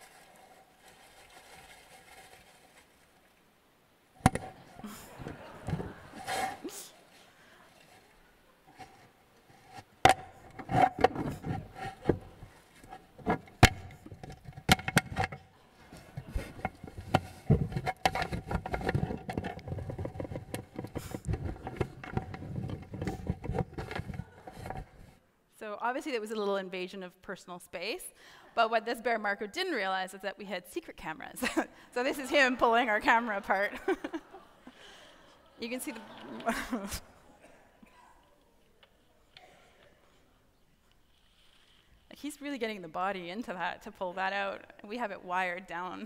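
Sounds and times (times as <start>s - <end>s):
faint background hiss: 0.0s - 46.0s.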